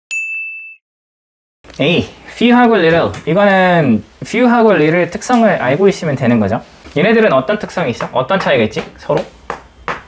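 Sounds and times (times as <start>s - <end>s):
high bell-like ding: 0.1s - 0.8s.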